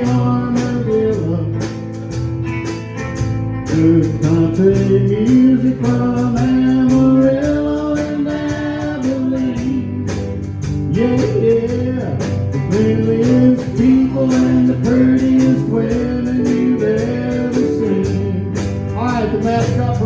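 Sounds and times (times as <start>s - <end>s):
electric bass: 0.0s - 20.0s
electric guitar: 0.0s - 20.0s
keyboard: 0.0s - 20.0s
steady drum beat: 0.0s - 20.0s.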